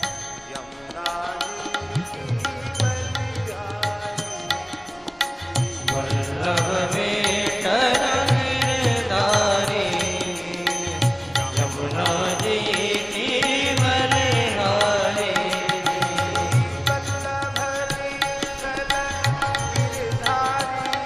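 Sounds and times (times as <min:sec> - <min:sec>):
person chanting melodically: 0:00.0 - 0:21.0.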